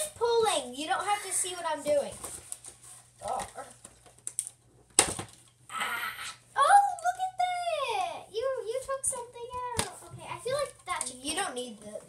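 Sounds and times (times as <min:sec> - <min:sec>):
light clicks of plastic pieces: 0:03.8 - 0:04.6.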